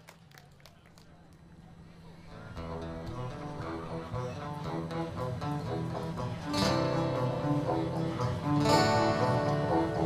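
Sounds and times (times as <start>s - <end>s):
audience applause: 0.0s - 1.4s
faint crowd chatter: 0.0s - 10.0s.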